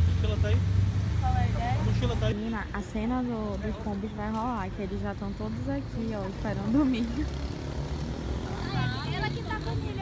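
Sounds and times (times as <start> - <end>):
street traffic rumble: 0.0 - 10.0
indistinct voices talking: 1.2 - 7.6.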